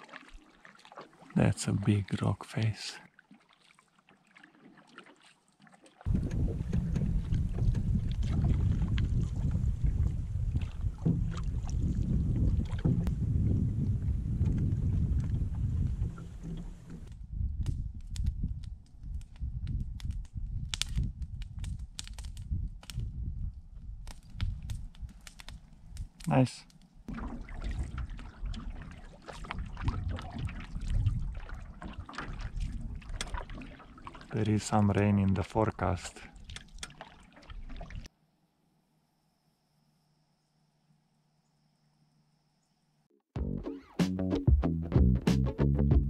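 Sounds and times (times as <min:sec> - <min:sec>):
paddle splashing water: 0:00.0 - 0:17.1, 0:27.1 - 0:38.1
wind rumbling on microphone: 0:06.1 - 0:26.3, 0:27.0 - 0:36.8.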